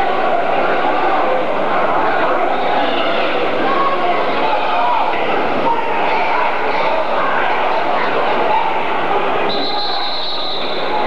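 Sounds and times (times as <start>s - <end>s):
crowd yelling and cheering: 0.0s - 11.0s.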